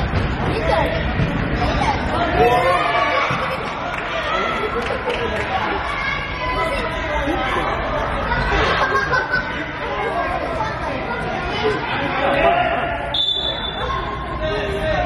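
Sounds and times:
people shouting and chattering: 0.0s - 15.0s.

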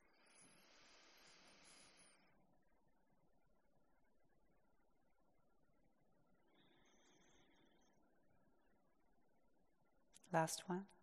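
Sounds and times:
faint breath: 0.0s - 2.6s, 6.3s - 8.7s.

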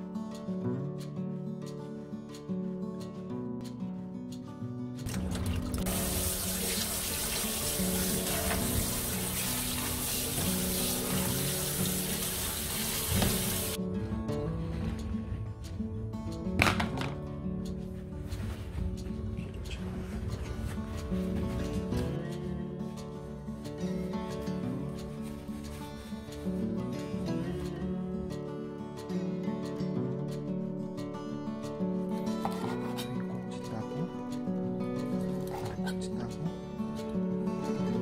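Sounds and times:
light background music: 0.0s - 38.0s
tap water running: 5.1s - 13.8s.

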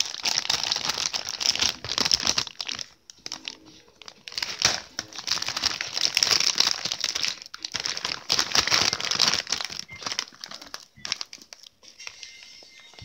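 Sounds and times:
plastic bag crinkling: 0.0s - 13.0s.

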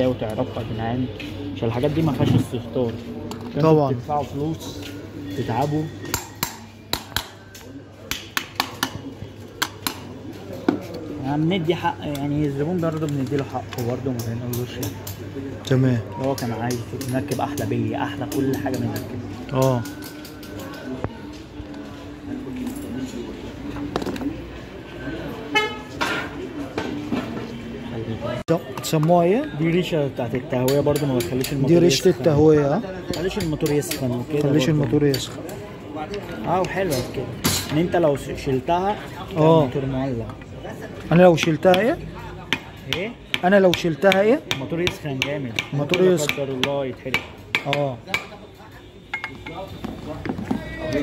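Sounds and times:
vehicle horn: 25.5s - 26.0s.

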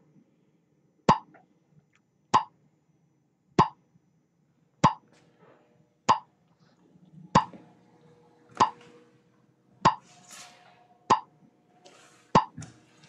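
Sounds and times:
faint low hum: 0.0s - 13.0s.

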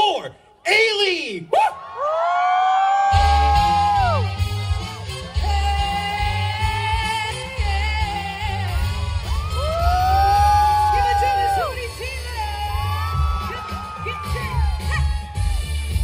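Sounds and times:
live pop music with pulsing bass: 3.0s - 16.0s.

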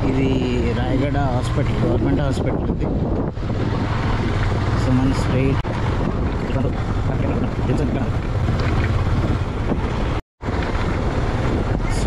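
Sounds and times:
motorcycle engine hum: 0.0s - 12.0s
road noise: 0.0s - 12.0s
wind buffeting microphone: 0.0s - 12.0s.

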